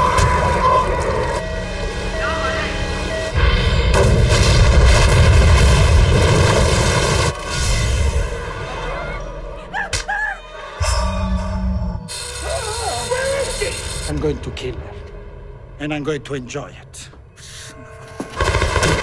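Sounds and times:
trailer music with low booms: 0.0 - 9.8, 10.5 - 12.3, 14.0 - 19.0.

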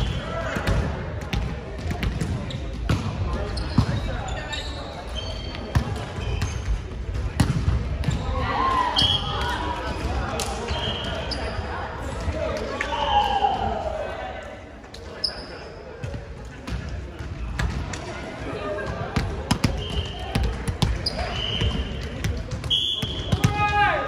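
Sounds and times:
sneaker squeaks on court: 2.4 - 6.8, 19.6 - 22.0.

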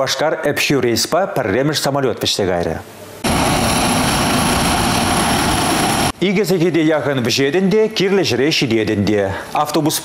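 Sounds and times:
high turbine whine: 2.9 - 7.8
propeller airliner taxiing: 3.2 - 6.2.

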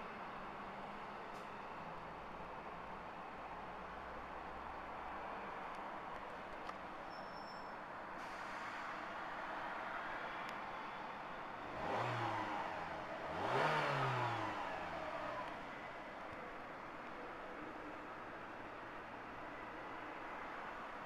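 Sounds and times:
car engine idling and revving: 10.5 - 17.2.

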